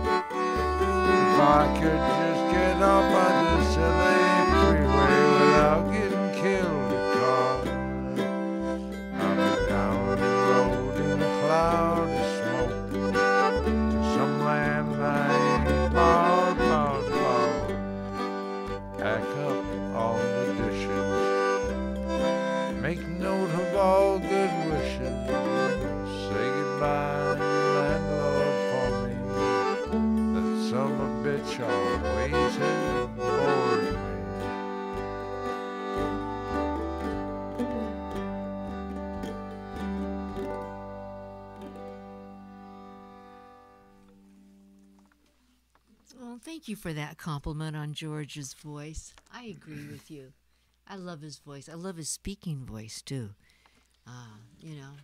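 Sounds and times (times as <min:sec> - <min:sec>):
person singing: 0:00.0 - 0:18.3, 0:19.0 - 0:21.4, 0:22.7 - 0:38.8
accordion: 0:00.0 - 0:45.8, 0:49.3 - 0:50.2
acoustic guitar: 0:00.0 - 0:50.7.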